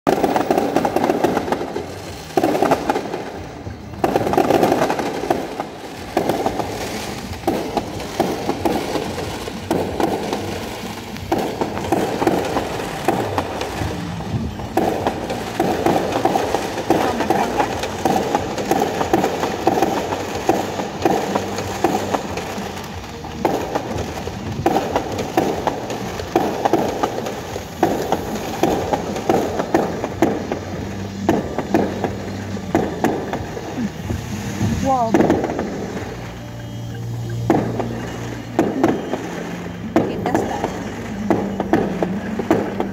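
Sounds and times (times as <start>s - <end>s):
fireworks bursting and crackling: 0.0s - 42.9s.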